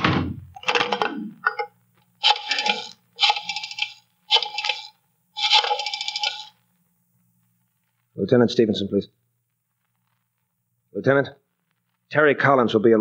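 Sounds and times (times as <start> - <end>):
faint low hum: 0.0 - 13.0.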